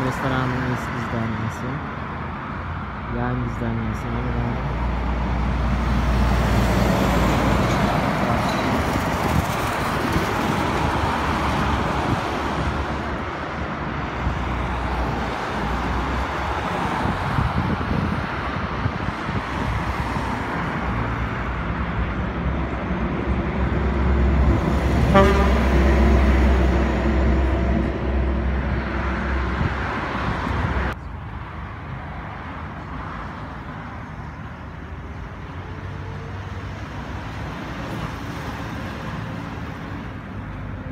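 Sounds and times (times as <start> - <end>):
road traffic rumble: 0.0 - 40.9
loud vehicle passing: 4.7 - 31.0.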